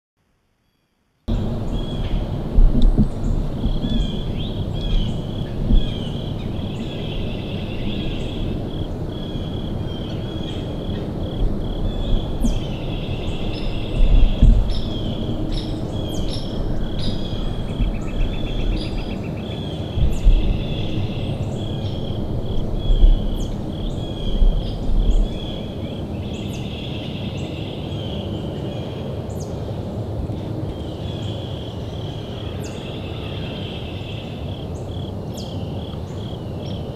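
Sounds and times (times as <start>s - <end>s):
rumbling bumps on microphone: 1.3s - 8.8s, 11.3s - 19.2s, 19.8s - 25.7s
pulsing chirping chorus: 1.3s - 30.0s.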